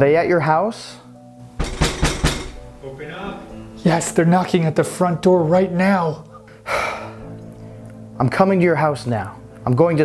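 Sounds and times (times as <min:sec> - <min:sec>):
loud knocking on a door: 0:01.6 - 0:02.7.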